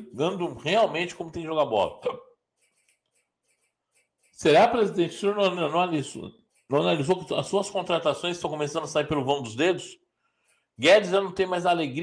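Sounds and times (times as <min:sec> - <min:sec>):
man speaking: 0:00.0 - 0:02.3, 0:04.4 - 0:10.0, 0:10.8 - 0:12.0.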